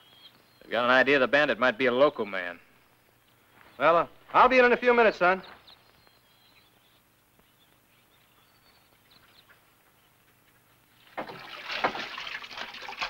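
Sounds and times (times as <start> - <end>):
faint bird chirps: 0.0 - 4.1, 5.2 - 11.0
water running into sink: 11.2 - 13.0.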